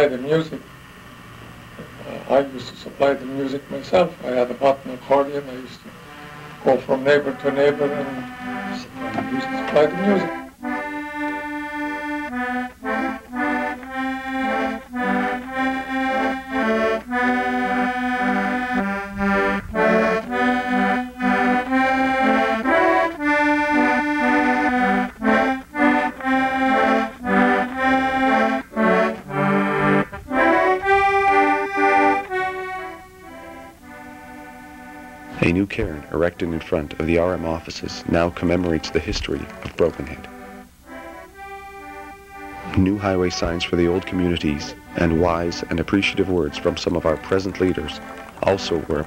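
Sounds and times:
button accordion playing: 0.0 - 49.0.

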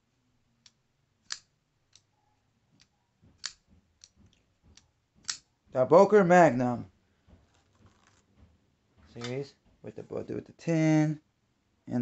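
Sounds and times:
folding knife clicking: 0.6 - 2.1, 2.8 - 4.2, 5.2 - 5.4.

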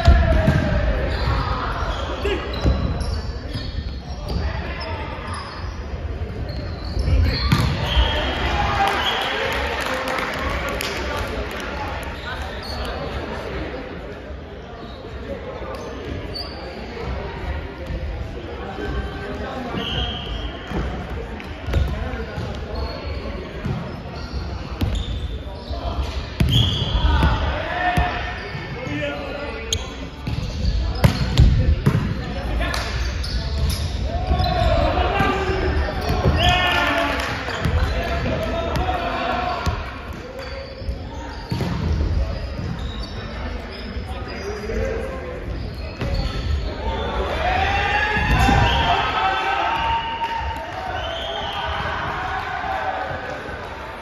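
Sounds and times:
players calling and shouting: 0.0 - 54.0.

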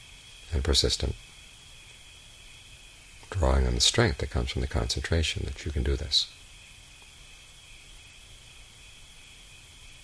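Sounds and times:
crickets chirring: 0.0 - 10.0
faint low hum: 0.0 - 10.0.

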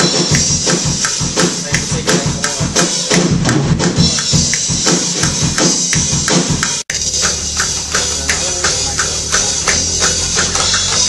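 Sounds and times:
electric bass guitar: 0.0 - 11.0
high percussive tick: 0.0 - 11.0.

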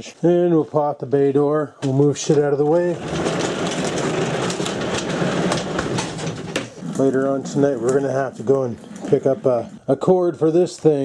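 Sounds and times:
garage door rattling rumble: 2.3 - 9.7.

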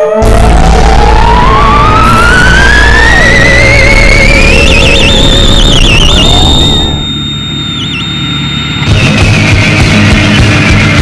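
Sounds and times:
theremin sliding with vibrato: 0.0 - 9.5.

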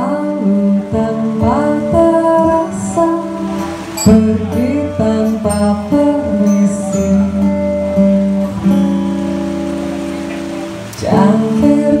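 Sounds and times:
person singing: 0.0 - 8.2, 10.8 - 12.0
acoustic guitar and cello chord: 0.0 - 12.0
rain hiss: 0.0 - 12.0.

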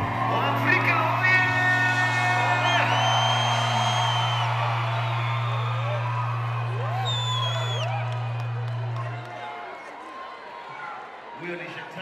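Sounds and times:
live concert music: 0.0 - 9.8
crowd whooping: 0.0 - 11.4
long high whistles: 2.4 - 9.0
low bass note: 3.2 - 9.2.

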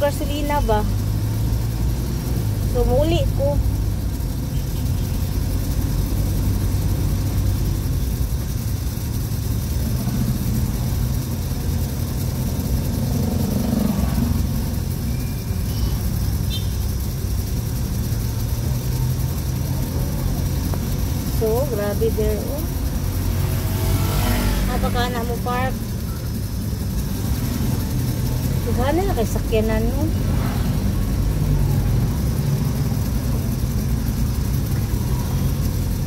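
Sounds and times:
vehicle engine rumbling: 0.0 - 36.0.

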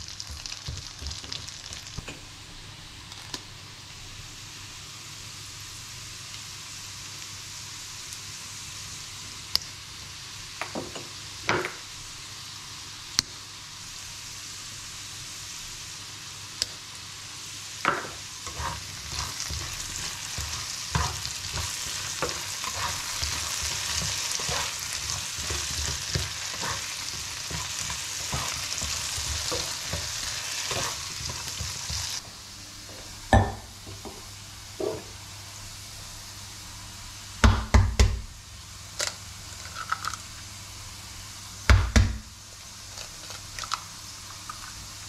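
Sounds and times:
potatoes sizzling in a pan: 0.0 - 45.0
spatula scraping a pan: 18.4 - 32.2.

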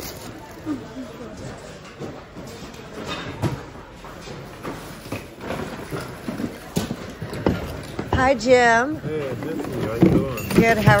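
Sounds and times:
goods clattering in plastic bin: 3.0 - 11.0.

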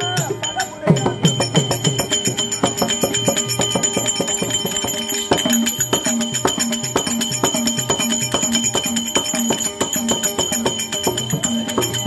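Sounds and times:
small metal percussion ringing: 0.0 - 12.0.

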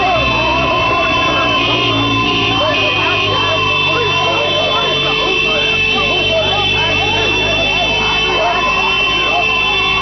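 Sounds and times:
car horns honking: 0.0 - 10.0
crowd shouting: 0.0 - 10.0.

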